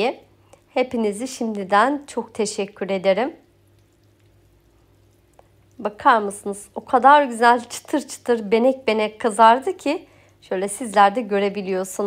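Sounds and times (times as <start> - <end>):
low steady hum: 0.0 - 12.0
pastry sizzling in hot oil: 0.0 - 12.0.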